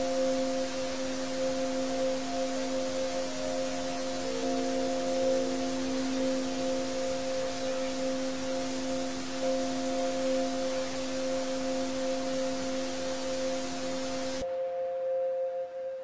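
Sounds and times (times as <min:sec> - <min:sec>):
constant hiss: 0:00.0 - 0:16.0
held drone tones: 0:00.0 - 0:16.0.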